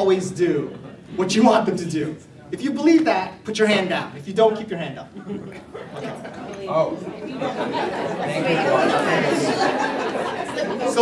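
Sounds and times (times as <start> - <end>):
audience chatter: 4.2 - 11.0.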